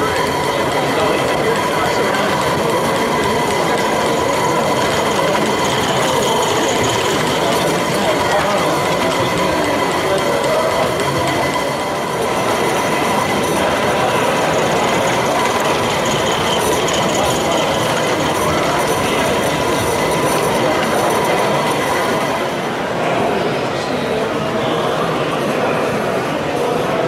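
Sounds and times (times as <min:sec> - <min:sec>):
hubbub of busy hall: 0:00.0 - 0:27.0
model trains rolling on track: 0:00.0 - 0:27.0.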